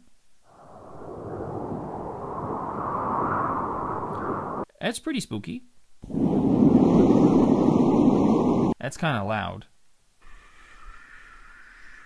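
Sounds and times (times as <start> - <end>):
spooky rushing wind: 0.5 - 4.6, 6.1 - 8.8.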